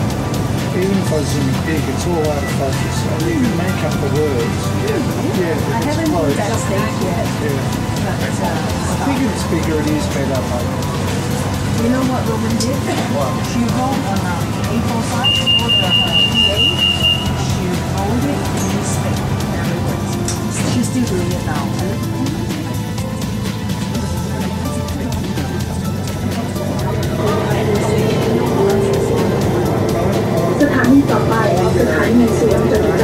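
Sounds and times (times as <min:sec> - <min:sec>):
metro train rumble: 0:00.0 - 0:33.0
high pulsing warning beep: 0:15.0 - 0:17.7.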